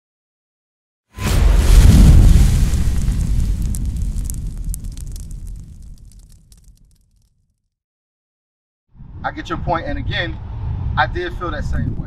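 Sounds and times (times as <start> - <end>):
deep explosion boom rumbling: 1.2 - 7.0
fiery crackles: 1.2 - 7.6.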